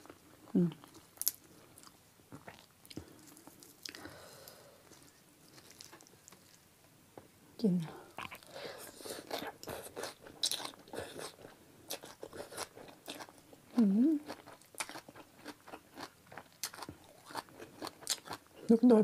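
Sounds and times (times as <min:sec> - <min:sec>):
chewing with crisp crunches: 0:00.0 - 0:06.7, 0:08.1 - 0:19.0
person humming: 0:13.8 - 0:14.2.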